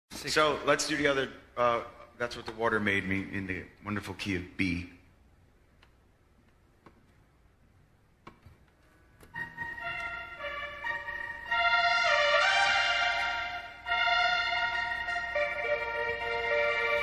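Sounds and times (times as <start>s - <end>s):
organ-like keyboard chords: 9.0s - 17.0s.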